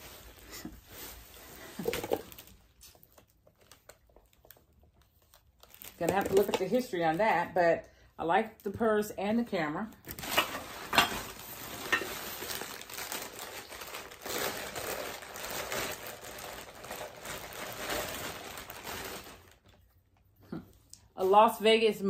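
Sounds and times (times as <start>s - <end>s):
wrapping rustling and crinkling: 0.0s - 7.6s, 10.0s - 20.4s.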